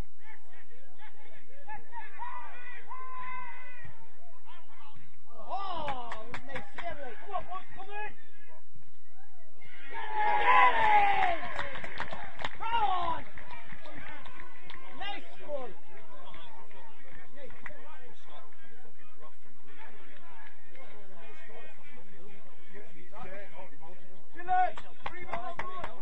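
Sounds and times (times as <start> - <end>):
people shouting outdoors: 1.1 - 4.4, 9.6 - 11.5.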